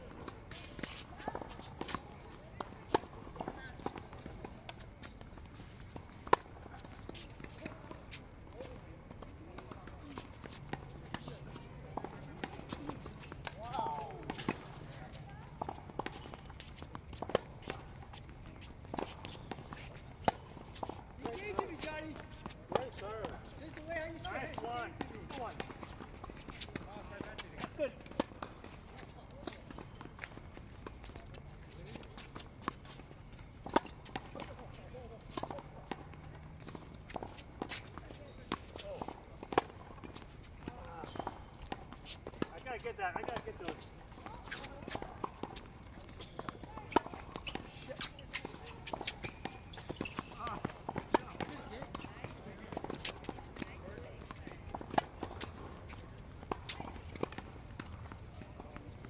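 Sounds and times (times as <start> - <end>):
tennis balls bouncing on court: 0.0 - 59.0
tennis balls struck by rackets: 0.0 - 59.0.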